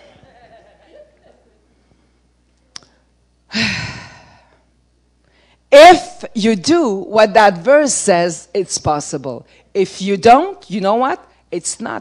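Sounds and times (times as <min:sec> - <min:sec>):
woman sighing: 0:03.5 - 0:04.6.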